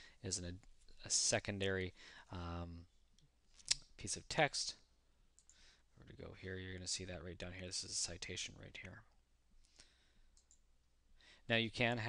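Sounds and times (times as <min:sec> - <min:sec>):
computer mouse clicks: 0:05.4 - 0:05.6, 0:09.6 - 0:10.6.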